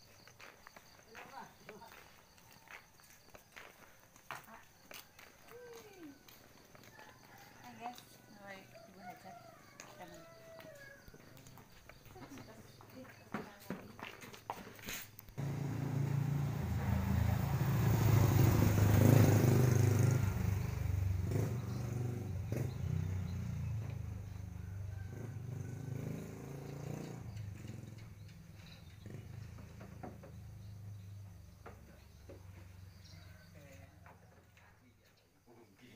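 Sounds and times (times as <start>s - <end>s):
vehicle engine rumble: 15.3s - 34.2s.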